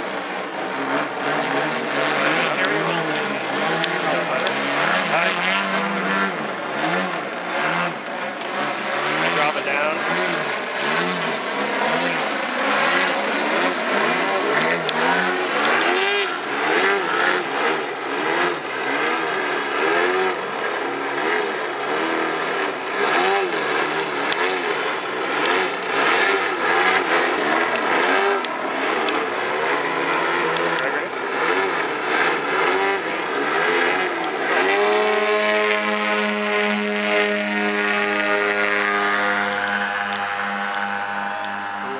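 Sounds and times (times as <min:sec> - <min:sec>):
model airplane engines in flight: 0:00.0 - 0:41.9.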